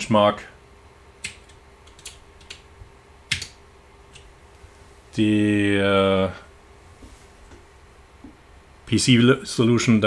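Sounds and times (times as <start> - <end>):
computer keyboard clicks: 1.2 - 2.6, 3.3 - 3.6.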